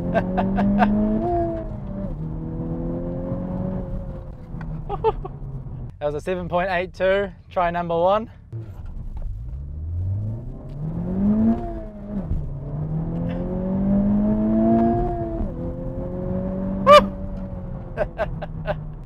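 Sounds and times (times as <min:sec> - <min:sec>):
car engine accelerating: 0:00.0 - 0:06.0, 0:08.5 - 0:19.0.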